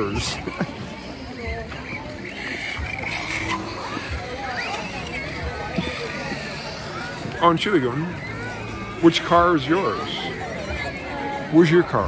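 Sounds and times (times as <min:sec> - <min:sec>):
indistinct voices: 0:00.0 - 0:12.0
outdoor background murmur: 0:00.0 - 0:12.0.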